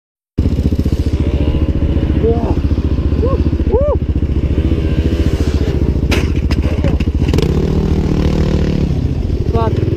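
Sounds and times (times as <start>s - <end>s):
dirt bike engine running: 0.4s - 9.9s
sharp knocks and clatters: 6.0s - 7.6s.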